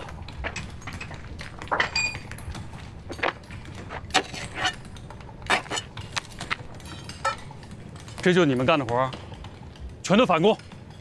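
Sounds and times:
steel rod clinking: 0.0 - 11.0.

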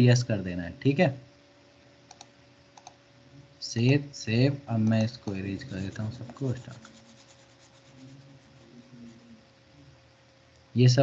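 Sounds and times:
thin steady hum: 0.0 - 11.0.

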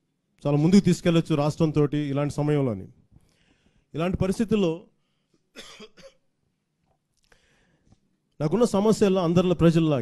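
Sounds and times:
man coughing: 5.5 - 6.3.

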